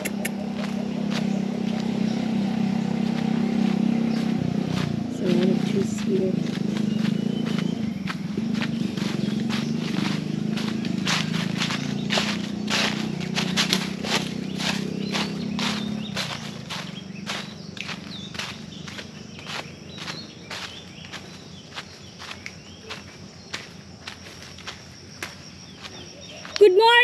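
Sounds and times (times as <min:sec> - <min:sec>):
footsteps on dry leaves: 0:00.0 - 0:27.0.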